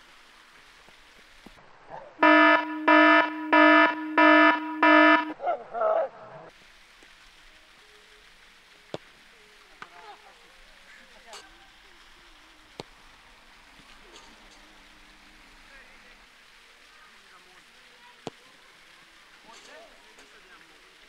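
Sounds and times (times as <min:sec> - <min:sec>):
electronic buzzer beeping: 0:02.2 - 0:05.3.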